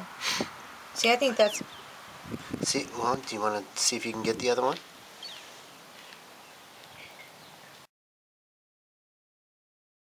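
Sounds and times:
faint background hiss: 0.0 - 7.9.

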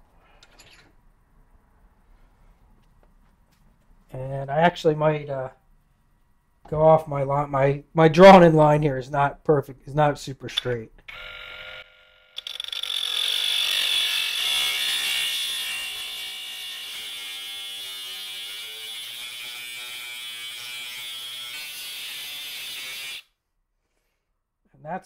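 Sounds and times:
power saw cutting metal: 11.1 - 23.3.

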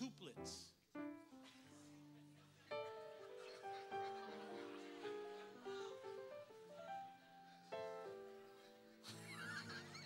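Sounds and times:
high laughter and squeals: 9.0 - 10.0.

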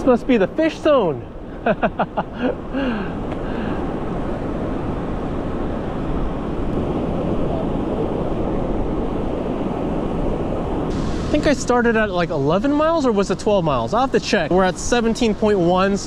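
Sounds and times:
wind rushing over microphone: 0.0 - 16.0
surf breaking: 2.7 - 16.0.

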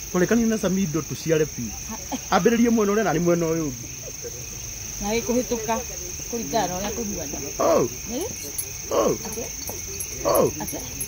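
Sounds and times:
crickets chirping: 0.0 - 11.0
human voices: 1.6 - 11.0.

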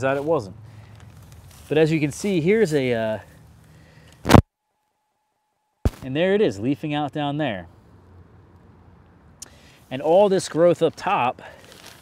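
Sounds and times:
faint steady tone: 3.7 - 5.8
microphone noise burst: 4.2 - 4.5.

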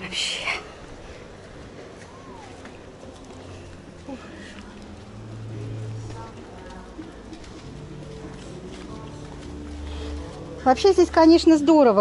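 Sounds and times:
faint distant voices: 0.0 - 12.0
low steady tones: 0.0 - 12.0.

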